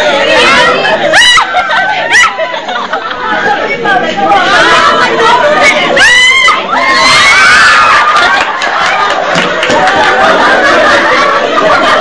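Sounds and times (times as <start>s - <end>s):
people chattering excitedly: 0.0s - 12.0s.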